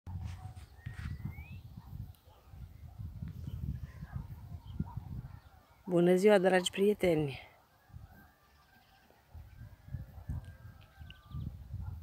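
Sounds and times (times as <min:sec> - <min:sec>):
wind buffeting microphone: 0:00.1 - 0:05.8, 0:07.8 - 0:08.4, 0:09.3 - 0:12.0.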